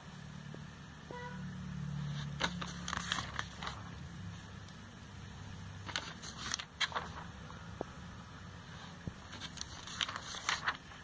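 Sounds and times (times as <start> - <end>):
steady low hum: 0.0 - 11.0
paper pages rustling: 2.0 - 4.8, 5.7 - 8.0, 8.6 - 11.0.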